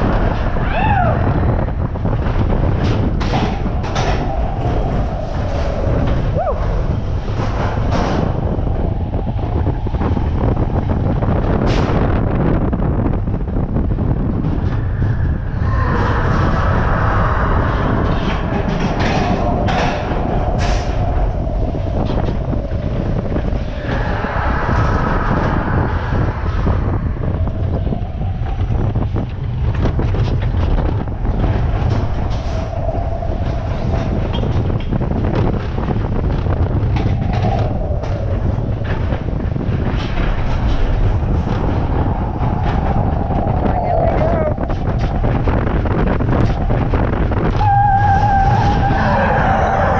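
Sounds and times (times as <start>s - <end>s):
coaster wheels rumbling on rails: 0.0s - 49.9s.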